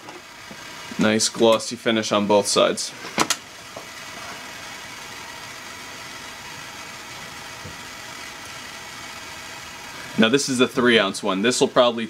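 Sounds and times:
hand torch hissing: 2.9 - 11.6.

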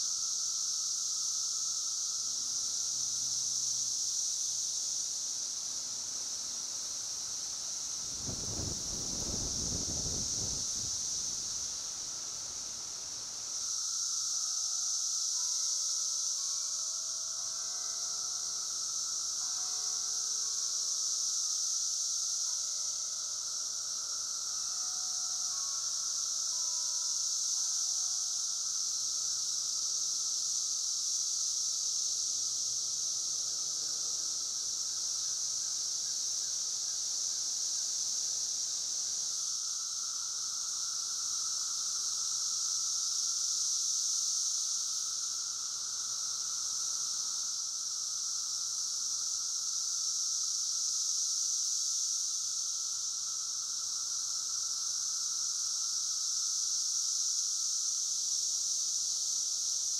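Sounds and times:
cicadas droning: 0.0 - 59.9.

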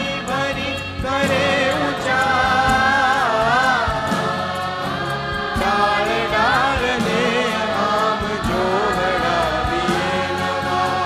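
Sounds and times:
choir singing in unison: 0.0 - 11.0
live band with drums: 0.0 - 11.0.

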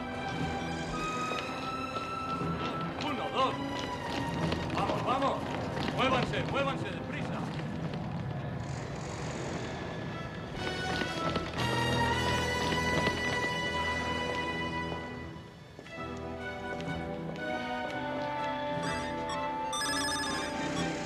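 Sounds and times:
running footsteps: 0.0 - 8.5, 10.4 - 21.0
action film music: 0.0 - 21.0.

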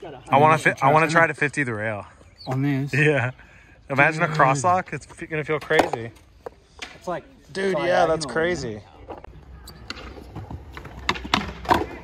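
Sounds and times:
skateboard wheels rolling on concrete: 4.0 - 12.0
skateboard clacks: 9.8 - 12.0.

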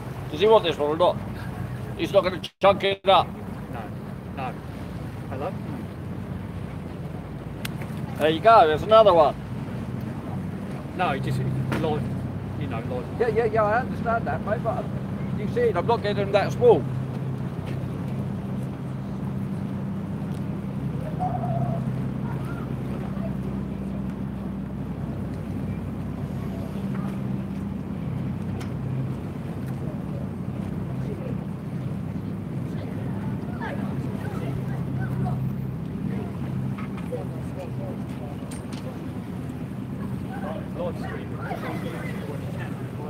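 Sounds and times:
boat engine drone: 0.0 - 43.0
faint voices: 20.8 - 24.4, 25.4 - 28.3, 29.1 - 43.0.

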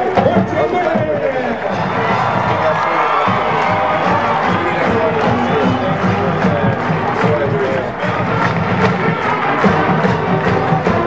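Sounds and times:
steady drum beat: 0.0 - 11.0
brass chords: 1.6 - 11.0.

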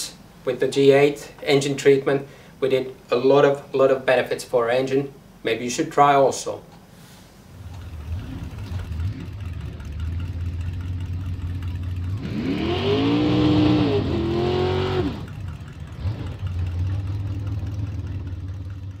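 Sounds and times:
car engine idling and revving: 7.5 - 19.0.

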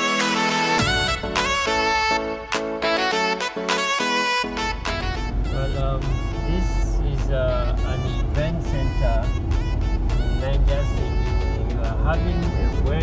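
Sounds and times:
music playing: 0.0 - 13.0
road and engine rumble: 0.8 - 13.0.

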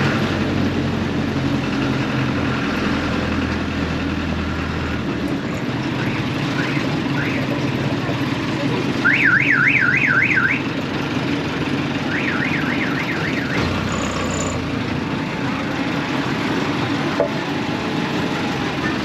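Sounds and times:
motor scooter running: 13.5 - 19.0.

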